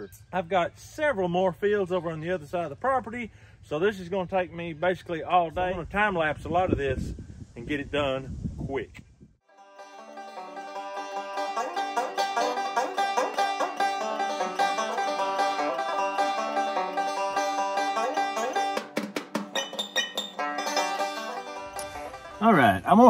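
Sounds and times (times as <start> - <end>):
fast picked banjo tune: 9.5 - 23.0.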